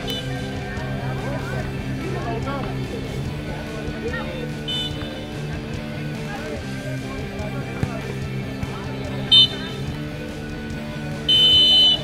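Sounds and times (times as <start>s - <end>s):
background music: 0.0s - 12.0s
shrill referee whistle blast: 11.3s - 12.0s.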